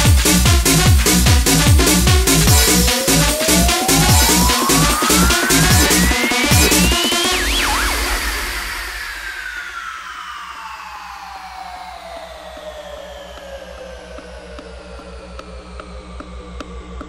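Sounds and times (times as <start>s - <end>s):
fast-pulsing bass: 0.0s - 17.0s
hissing sweep: 2.5s - 11.4s
high tones gliding downward: 2.5s - 15.6s
light percussion ticks: 13.3s - 17.0s.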